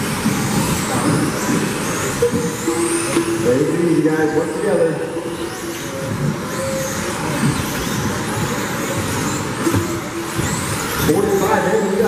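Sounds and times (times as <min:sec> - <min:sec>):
high motor whines: 0:00.0 - 0:12.0
running noise: 0:00.0 - 0:12.0.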